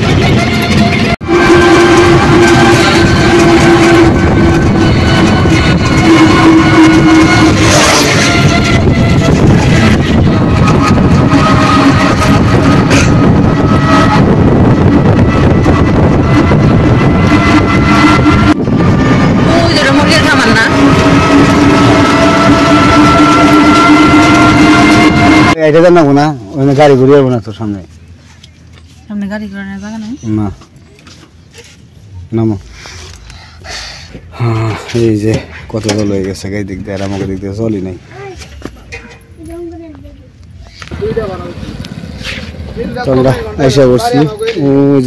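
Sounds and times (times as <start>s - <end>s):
road and wind noise: 0.0s - 45.0s.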